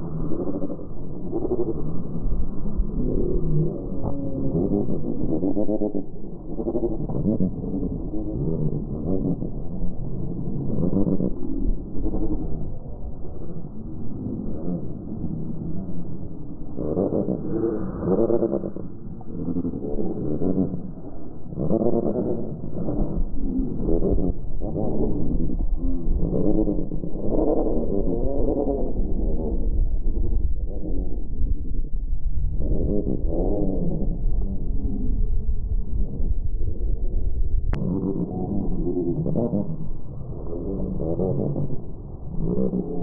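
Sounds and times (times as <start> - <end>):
low rumble: 0.0 - 43.0
slowed deep gull calls: 0.0 - 43.0.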